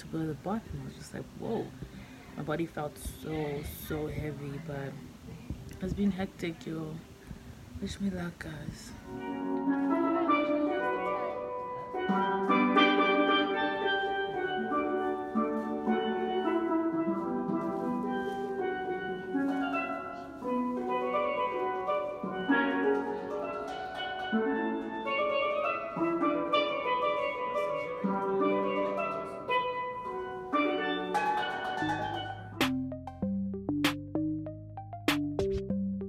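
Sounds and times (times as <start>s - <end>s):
steel pan melody: 5.8s - 36.0s.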